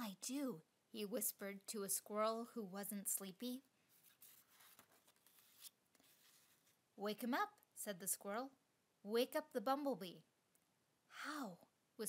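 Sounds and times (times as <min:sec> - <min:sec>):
faint soft rustle: 0:03.8 - 0:06.8.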